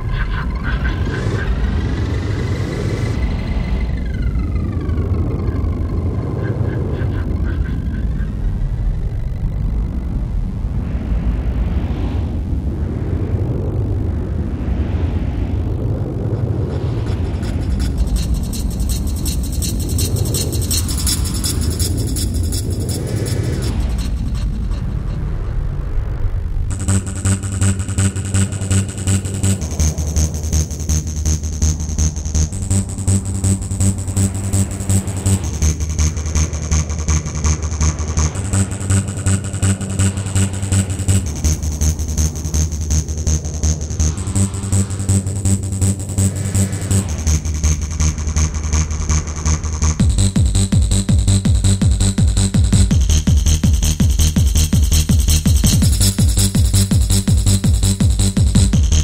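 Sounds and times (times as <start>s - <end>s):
electronic dance music: 17.3s - 25.0s, 26.7s - 59.0s.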